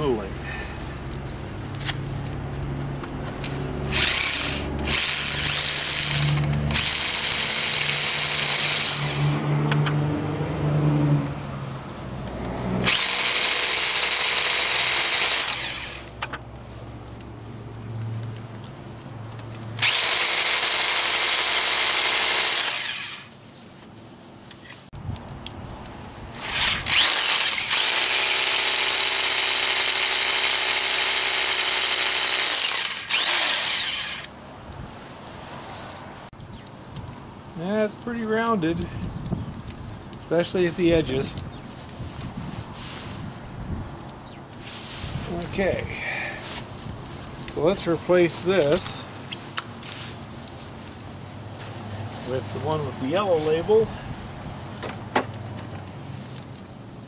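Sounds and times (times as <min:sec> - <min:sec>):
hammer drill boring into rock: 0:03.9 - 0:09.4, 0:12.8 - 0:16.2, 0:19.8 - 0:23.3, 0:26.4 - 0:34.3.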